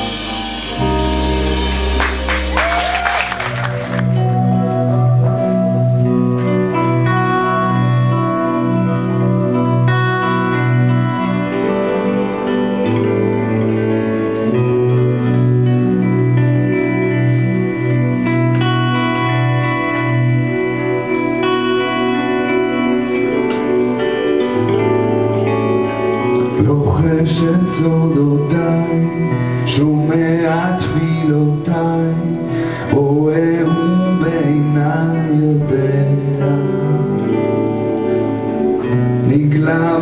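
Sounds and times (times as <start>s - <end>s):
low bass note: 0.0s - 2.8s
keyboard and guitar chords: 0.0s - 40.0s
live band playing: 0.0s - 40.0s.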